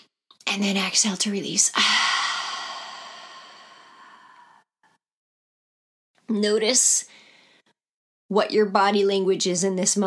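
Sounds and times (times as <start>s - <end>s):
woman's breathy exhale: 1.8s - 4.7s.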